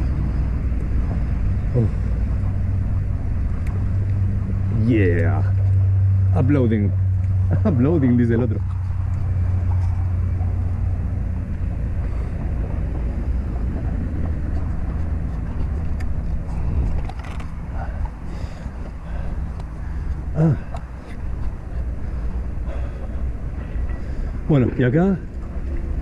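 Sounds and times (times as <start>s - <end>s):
wind on microphone: 0.0s - 19.3s.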